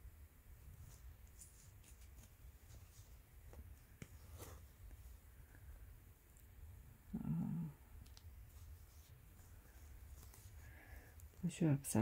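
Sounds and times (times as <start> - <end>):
woman murmuring: 7.1 - 7.8.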